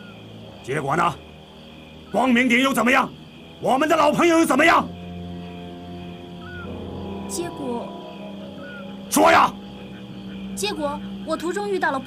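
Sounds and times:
sustained low music notes: 0:00.0 - 0:12.0
small high chirp: 0:04.6 - 0:11.6.

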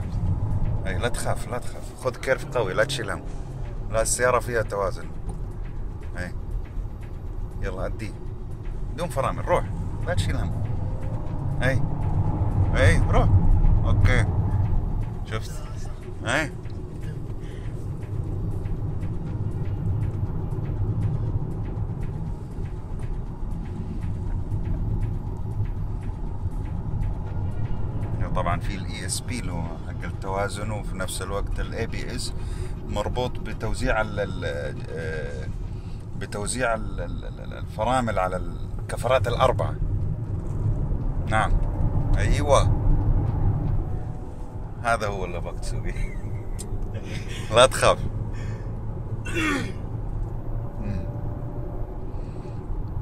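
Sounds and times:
car engine and road rumble: 0:00.0 - 0:53.0.

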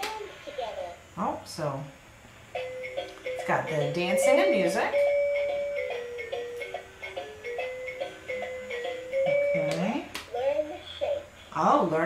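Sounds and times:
toy robot electronic melody: 0:02.6 - 0:09.8.

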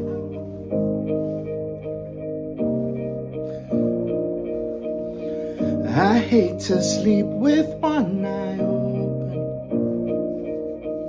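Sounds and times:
backing track sustained chords: 0:00.0 - 0:11.0.

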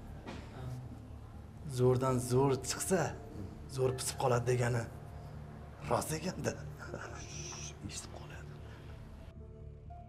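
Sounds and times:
man speaking softly: 0:05.8 - 0:08.6.

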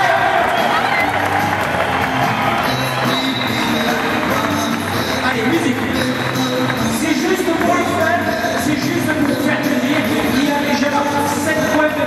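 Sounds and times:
music over sound system: 0:00.0 - 0:12.0.

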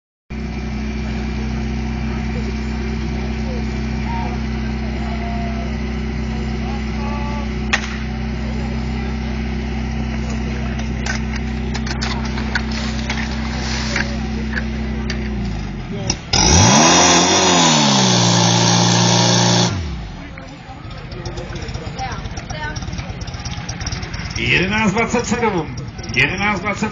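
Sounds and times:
fire pump engine running: 0:00.3 - 0:26.9.

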